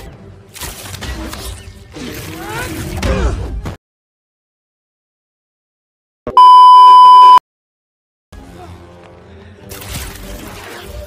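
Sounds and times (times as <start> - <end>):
electronic beep tone: 6.3 - 7.4.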